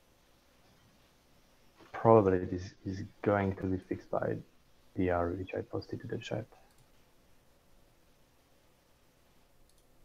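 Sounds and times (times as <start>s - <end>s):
faint clicks: 6.5s - 7.0s, 9.6s - 10.0s.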